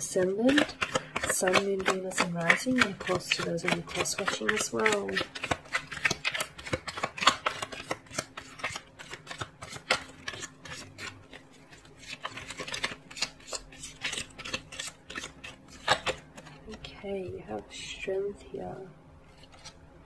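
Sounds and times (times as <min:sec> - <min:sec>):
cards being shuffled: 0:00.0 - 0:17.4, 0:19.3 - 0:20.0.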